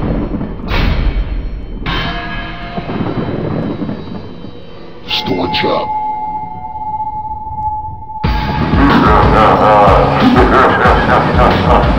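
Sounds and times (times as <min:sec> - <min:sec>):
rushing rumbling sound effect: 0:00.0 - 0:11.9.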